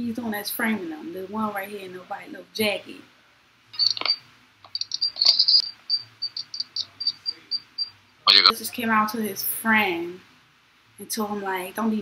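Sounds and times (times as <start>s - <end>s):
short high chirps: 3.8s - 8.5s.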